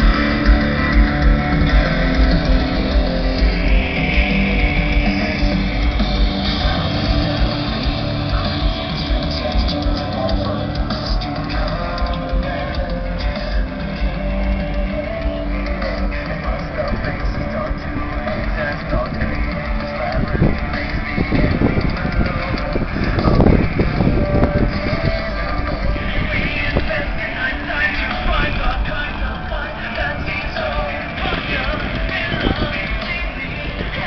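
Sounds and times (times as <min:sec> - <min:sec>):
loud rock music with singing: 0:00.0 - 0:34.0
low rumbling on microphone: 0:00.0 - 0:34.0.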